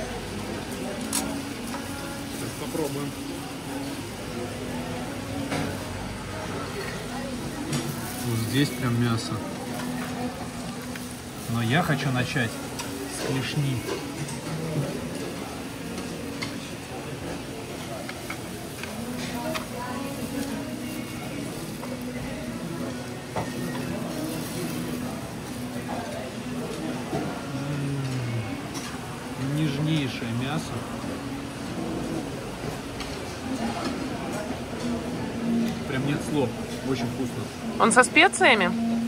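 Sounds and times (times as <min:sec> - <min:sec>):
murmured background voices: 0:00.0 - 0:39.0
plastic gloves crinkling: 0:23.6 - 0:26.0.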